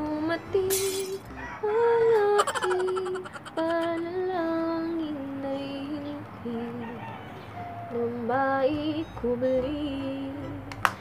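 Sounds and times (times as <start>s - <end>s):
woman humming: 2.2s - 4.2s.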